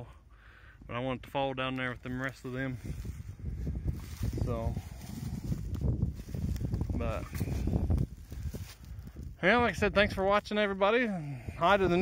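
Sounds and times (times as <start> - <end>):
wind rumbling on microphone: 2.0 - 12.0
footsteps crunching dry leaves: 2.1 - 9.4.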